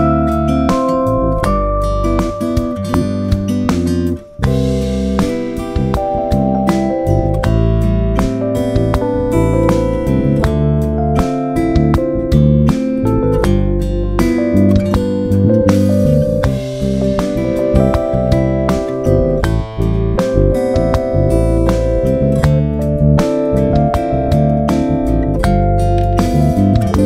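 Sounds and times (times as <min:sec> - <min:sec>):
acoustic guitar and drums: 0:00.0 - 0:27.0
electric bass guitar: 0:00.0 - 0:27.0.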